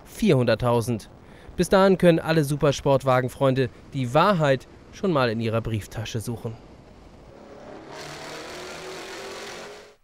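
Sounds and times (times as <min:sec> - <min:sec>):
sports car engine driving: 0:06.9 - 0:10.0.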